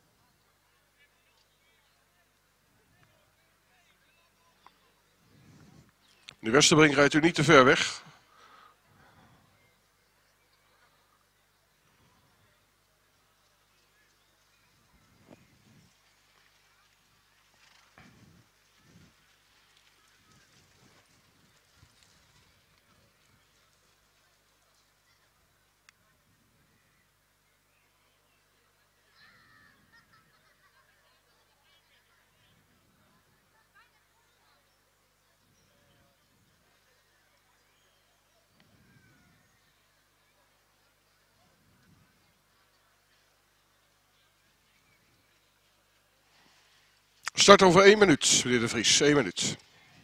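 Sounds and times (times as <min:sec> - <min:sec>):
faint distant voices: 0:00.0 - 0:50.0.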